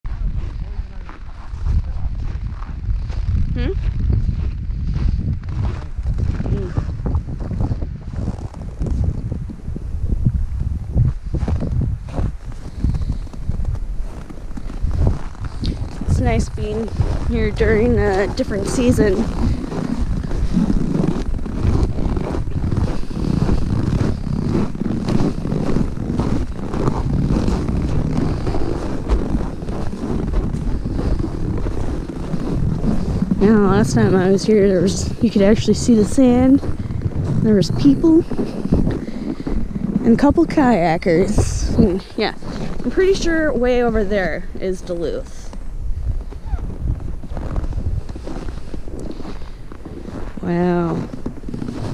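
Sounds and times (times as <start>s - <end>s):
wind buffeting microphone: 0.0s - 51.9s
footsteps crunching in snow: 0.1s - 51.9s.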